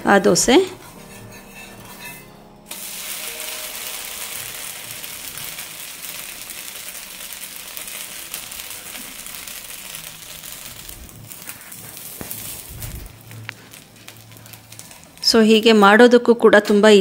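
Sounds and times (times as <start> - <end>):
dosa sizzling on a hot griddle: 0.8 - 15.8.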